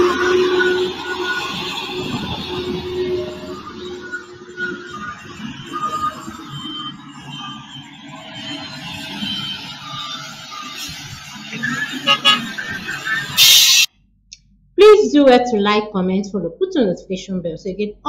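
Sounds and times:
heavy construction machinery: 0:00.0 - 0:13.9
voices: 0:11.4 - 0:13.4.

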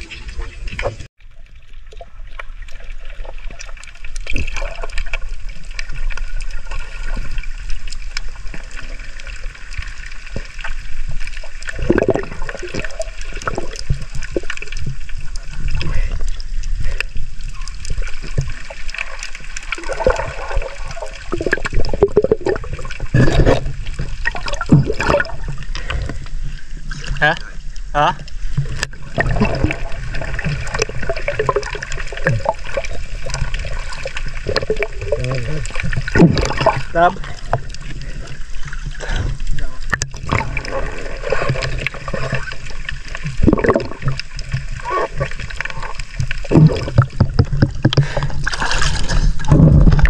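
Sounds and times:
muffled underwater water sloshing: 0:00.0 - 0:50.0.

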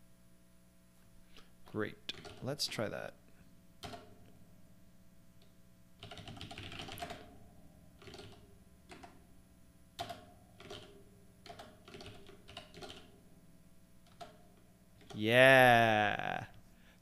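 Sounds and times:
computer keyboard typing: 0:02.1 - 0:02.9, 0:03.8 - 0:04.1, 0:06.0 - 0:07.4, 0:08.0 - 0:09.2, 0:10.0 - 0:13.2.

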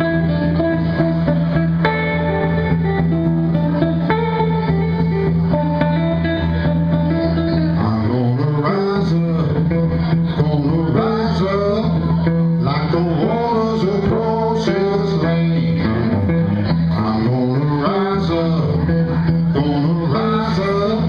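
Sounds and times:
blues electric guitar: 0:00.0 - 0:21.0
man singing: 0:07.5 - 0:21.0.

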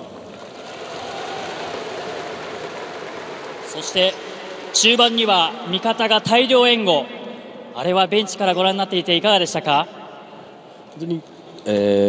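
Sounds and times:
crowd noise in stadium: 0:00.0 - 0:11.7.

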